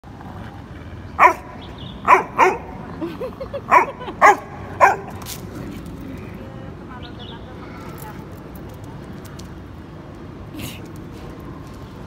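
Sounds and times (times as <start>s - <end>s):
dog barking: 1.2s - 2.8s, 3.7s - 5.2s.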